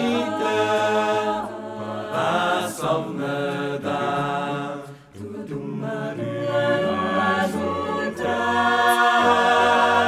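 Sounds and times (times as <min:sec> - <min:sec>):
choir singing in harmony: 0:00.0 - 0:10.0.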